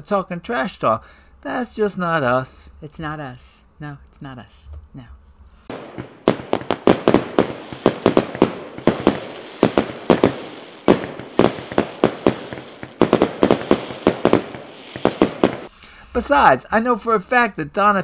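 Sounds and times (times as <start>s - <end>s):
fireworks bangs and crackles: 5.7s - 16.4s.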